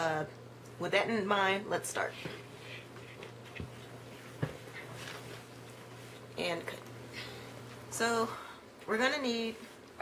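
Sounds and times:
low steady hum: 0.0 - 10.0
faint rustling of movement: 2.0 - 8.0.

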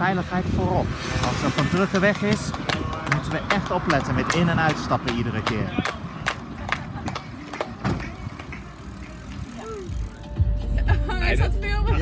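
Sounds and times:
voices: 0.0 - 12.0
hand clapping: 2.1 - 8.7.

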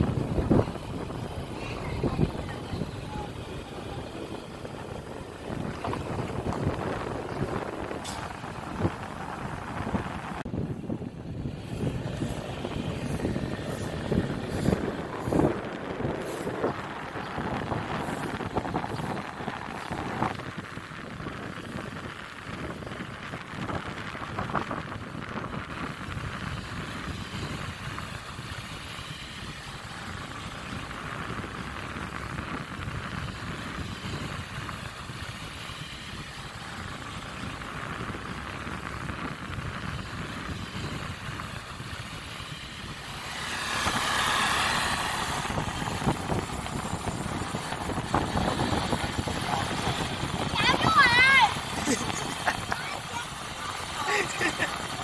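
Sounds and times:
motor scooter engine: 0.0 - 55.0
street traffic: 0.0 - 55.0.

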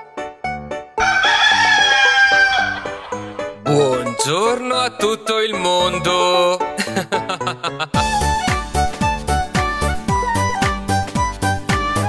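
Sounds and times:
rooster crowing: 1.0 - 3.5
bouncy children's song: 3.6 - 12.0.

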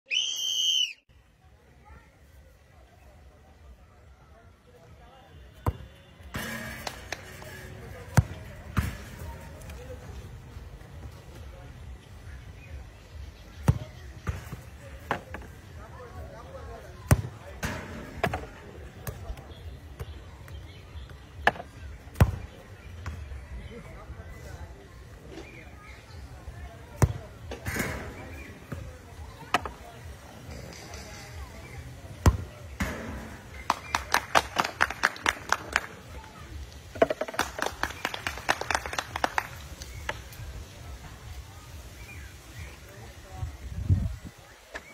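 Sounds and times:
sharp clap-like hits: 6.4 - 7.4, 37.3 - 40.2
balls being kicked: 8.0 - 10.1, 13.6 - 15.5, 17.0 - 23.3, 26.9 - 29.9, 32.2 - 33.3.

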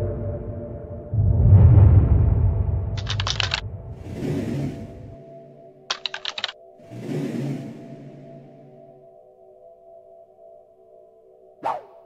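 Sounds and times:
keyboard typing clicks: 3.0 - 3.6, 5.9 - 6.6.

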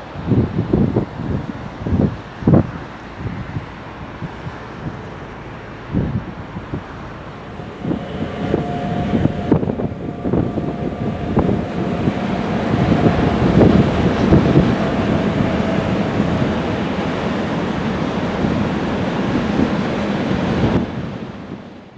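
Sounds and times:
wind rumble on microphone: 0.0 - 21.9
thin steady whine: 2.4 - 19.4.

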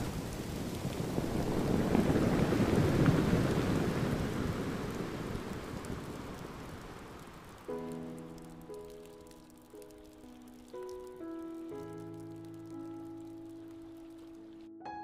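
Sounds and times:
glacier calving rumble: 0.0 - 7.6.

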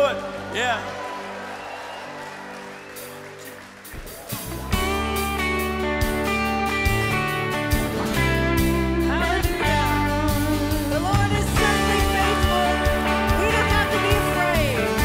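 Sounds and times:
worship band playing: 0.0 - 15.0
held keyboard and guitar chord: 4.9 - 15.0
person singing: 9.0 - 15.0.

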